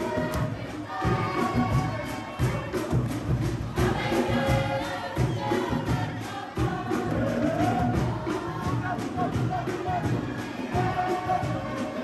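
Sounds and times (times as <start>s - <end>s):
fast drumbeat: 0.0s - 12.0s
group of voices singing: 0.0s - 12.0s.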